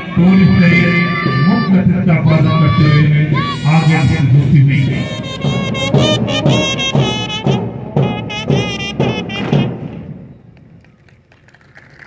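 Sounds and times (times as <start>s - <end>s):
band music: 0.0s - 10.3s
faint outdoor background: 0.0s - 12.0s.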